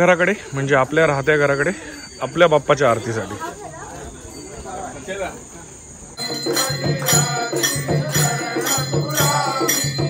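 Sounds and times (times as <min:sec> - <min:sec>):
people murmuring: 0:00.0 - 0:10.0.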